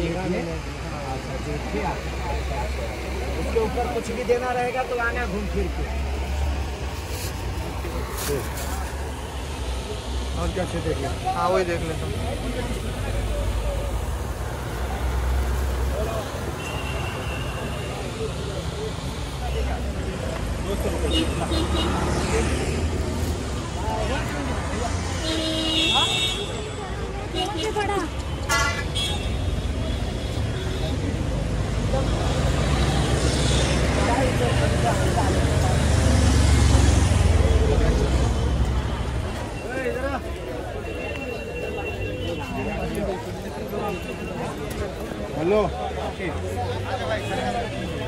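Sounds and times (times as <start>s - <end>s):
chatter of shoppers: 0.0s - 48.0s
road traffic rumble: 0.0s - 48.0s.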